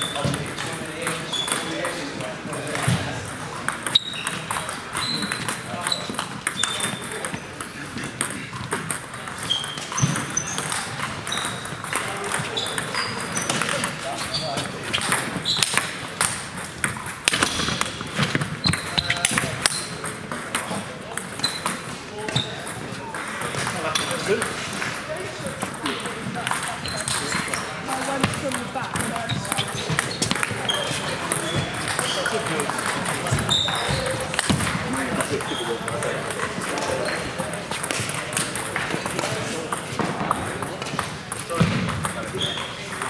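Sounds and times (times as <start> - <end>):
distant ping pong pings: 0.0 - 25.0, 25.6 - 43.0
murmur of voices: 0.0 - 43.0
ping pong ball clicking: 2.6 - 14.0, 26.0 - 27.6.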